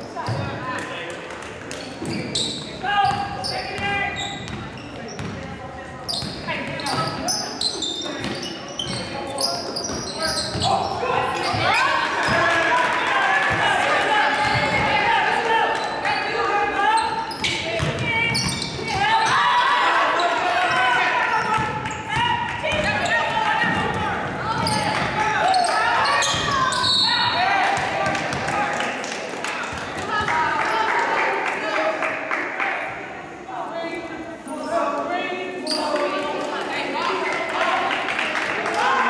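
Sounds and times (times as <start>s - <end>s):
indistinct echoing shouts: 10.3s - 29.0s.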